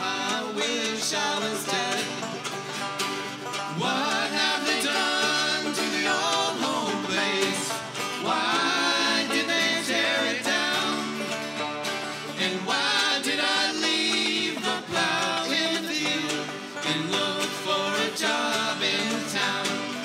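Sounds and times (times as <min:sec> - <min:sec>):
person singing: 0:00.0 - 0:02.6, 0:03.6 - 0:20.0
acoustic guitar picking: 0:00.0 - 0:20.0
banjo: 0:00.0 - 0:20.0
mandolin: 0:00.0 - 0:20.0.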